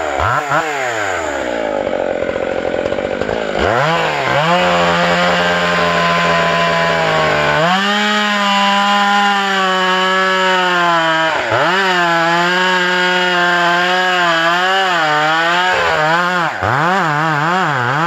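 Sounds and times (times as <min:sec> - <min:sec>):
chainsaw cutting into tree: 0:00.0 - 0:18.0.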